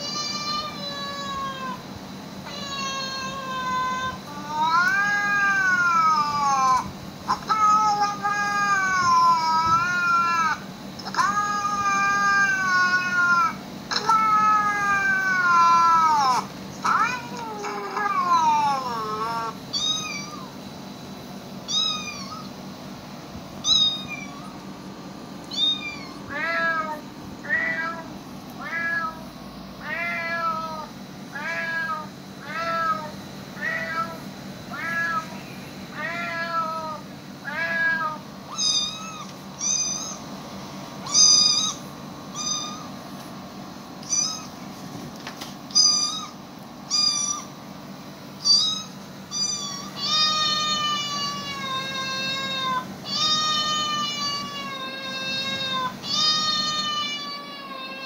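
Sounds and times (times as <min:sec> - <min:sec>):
cat meowing: 0:00.0 - 0:01.8, 0:02.4 - 0:20.6, 0:21.6 - 0:22.6, 0:23.6 - 0:24.6, 0:25.5 - 0:29.2, 0:29.8 - 0:40.3, 0:41.0 - 0:42.9, 0:44.0 - 0:44.6, 0:45.7 - 0:47.5, 0:48.4 - 0:58.0.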